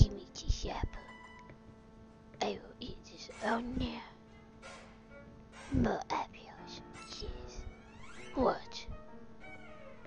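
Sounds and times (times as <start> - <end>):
music with held note: 3.2 - 5.9, 6.6 - 10.0.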